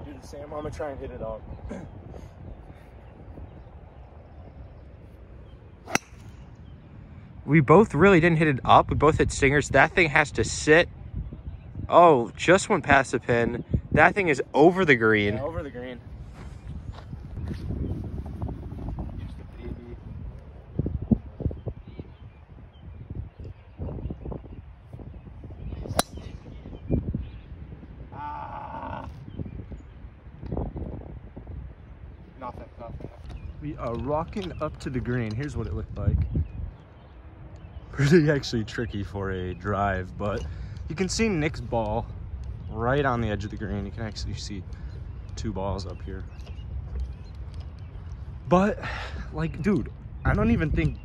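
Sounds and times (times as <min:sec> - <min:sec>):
wind buffeting microphone: 0:00.0 - 0:51.0
golf club striking ball: 0:05.8 - 0:06.4, 0:25.9 - 0:26.3.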